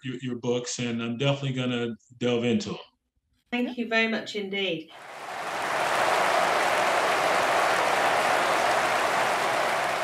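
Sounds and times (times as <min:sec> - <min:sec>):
crowd applause: 0:04.9 - 0:10.0.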